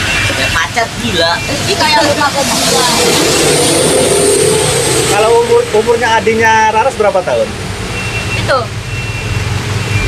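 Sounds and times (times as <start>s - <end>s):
vehicle engine running: 0.0s - 7.9s
people talking: 0.3s - 3.5s, 5.1s - 7.5s, 8.4s - 8.7s.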